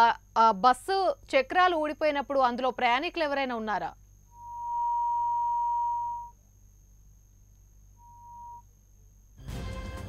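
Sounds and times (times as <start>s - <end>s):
high-pitched electronic beep: 4.4s - 6.4s.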